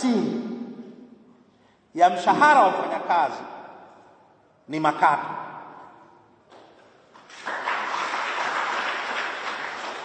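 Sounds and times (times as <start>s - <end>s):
audience applauding: 7.1s - 10.0s.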